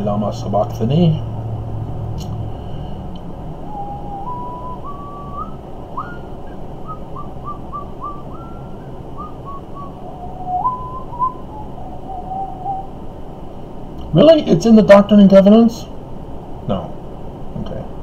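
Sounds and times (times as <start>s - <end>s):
man whistling a tune: 3.6s - 12.9s.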